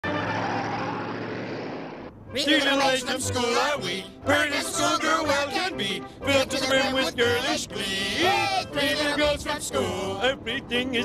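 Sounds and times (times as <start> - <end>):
car engine driving past: 0.0 - 2.2
road noise: 0.0 - 11.0.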